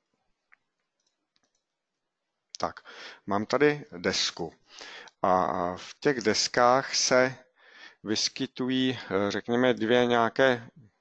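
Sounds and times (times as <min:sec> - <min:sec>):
faint computer mouse clicks: 0:00.5 - 0:01.8.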